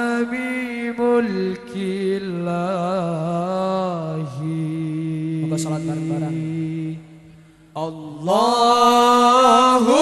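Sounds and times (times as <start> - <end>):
person chanting a sung blessing: 7.8 - 10.0.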